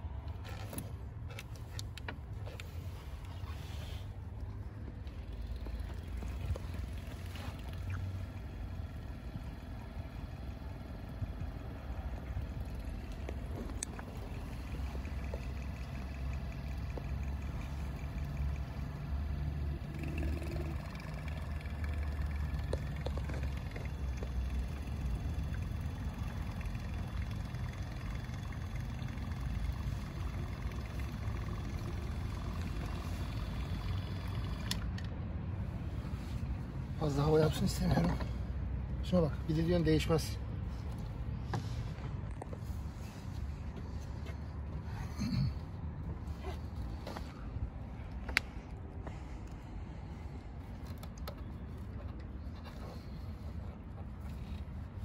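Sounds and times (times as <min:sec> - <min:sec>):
small pump humming: 0:04.4 - 0:35.1.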